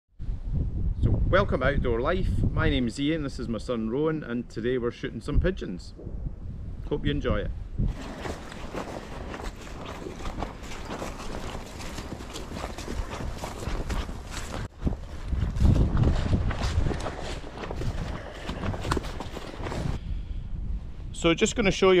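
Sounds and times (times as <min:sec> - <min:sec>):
wind rumble on microphone: 0:00.2 - 0:03.8, 0:05.2 - 0:22.0
footsteps in wet grass and mud: 0:07.8 - 0:20.0.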